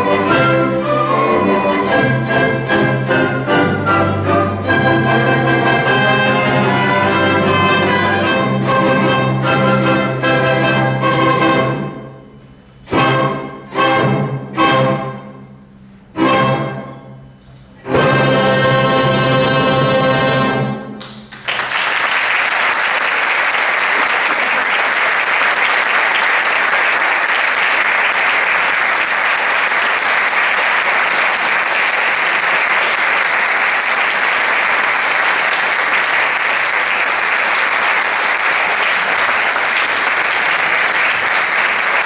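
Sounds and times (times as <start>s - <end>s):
audience applauding: 21.0s - 42.0s.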